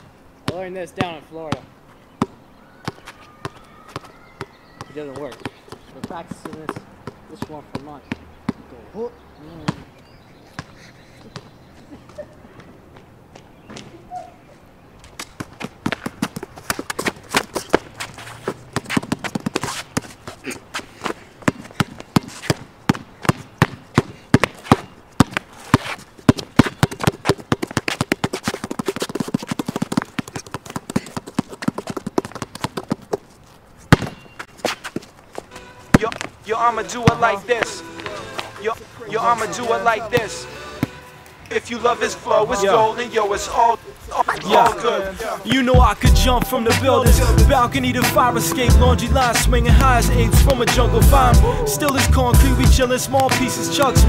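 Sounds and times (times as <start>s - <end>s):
knocks and slaps on court: 15.2s - 33.2s, 33.9s - 36.3s, 37.0s - 38.5s, 53.2s - 54.0s.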